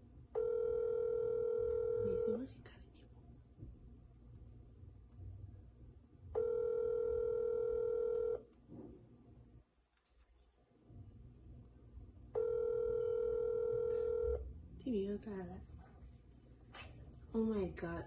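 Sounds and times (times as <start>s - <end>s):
telephone ringback tone: 0.4s - 2.4s, 6.4s - 8.4s, 12.4s - 14.4s.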